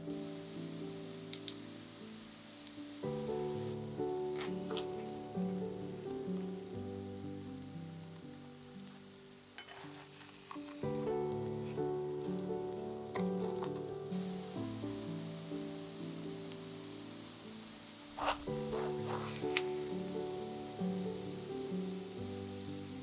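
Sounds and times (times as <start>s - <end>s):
patties sizzling in oil: 0.0s - 23.0s
soft background music: 0.0s - 23.0s.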